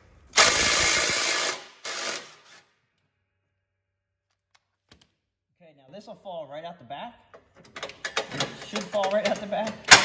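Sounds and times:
electric ratchet spinning: 0.3s - 2.6s.

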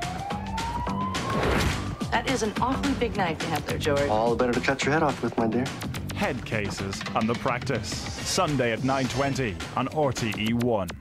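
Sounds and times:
siren wail rising in pitch: 0.0s - 2.6s.

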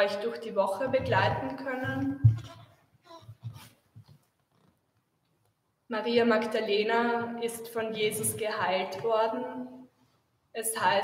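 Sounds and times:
woman speaking: 0.0s - 2.2s, 5.9s - 9.8s, 10.6s - 11.0s.

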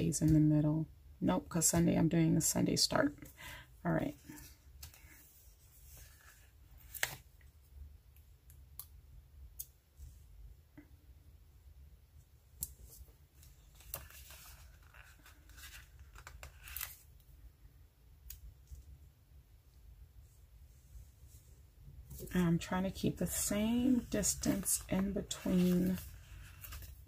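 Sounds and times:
low steady hum: 0.0s - 27.0s
paper rustling: 12.8s - 17.1s, 23.3s - 27.0s.

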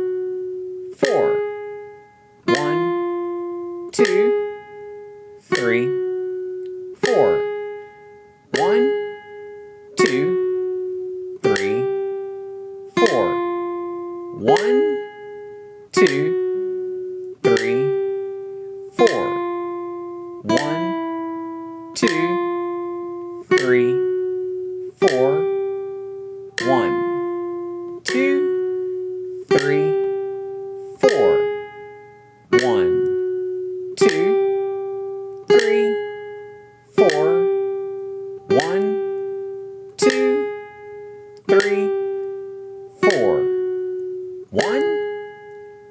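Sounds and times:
classical guitar plucked notes: 0.0s - 45.9s.

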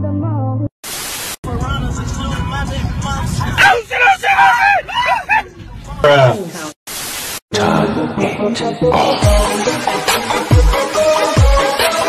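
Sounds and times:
tv static hiss: 0.8s - 1.4s, 6.9s - 7.4s
road rumble inside moving car: 1.5s - 3.9s.

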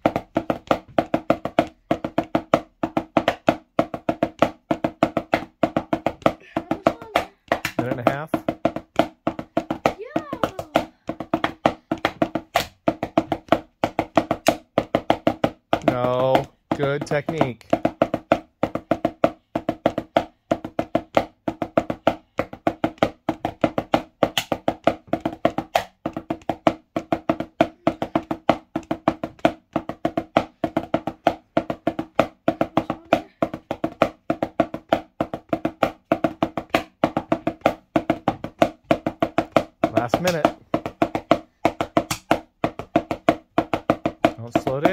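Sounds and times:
drumsticks tapping practice pad: 0.0s - 44.9s.

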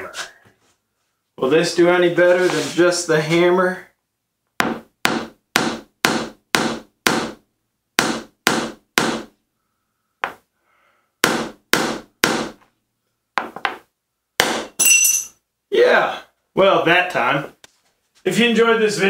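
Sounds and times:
hammer knocking on wooden block: 4.6s - 7.4s, 8.0s - 9.3s, 11.2s - 12.6s, 13.4s - 14.7s
glass ringing clink: 14.8s - 15.4s.

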